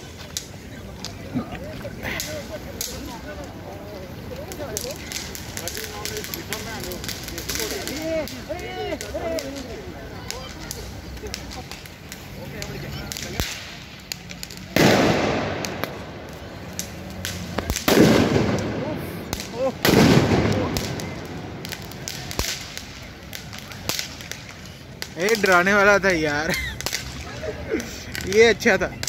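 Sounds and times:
fireworks crackling pops: 0.0 - 29.0
loud firework bangs: 12.6 - 25.7, 26.7 - 28.4.

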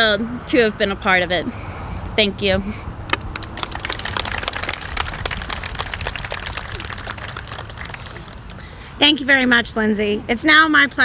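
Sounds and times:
low steady rumble: 0.0 - 10.0
crowd applauding: 3.1 - 8.5.

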